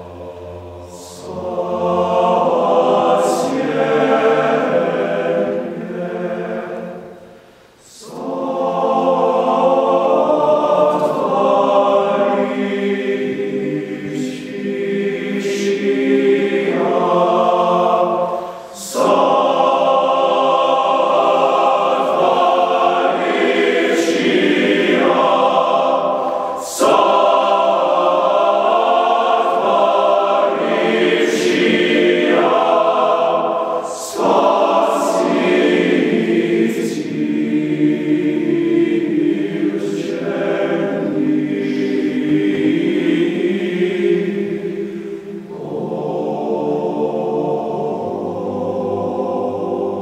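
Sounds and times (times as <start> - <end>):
men's choir singing in harmony: 0.0 - 50.0.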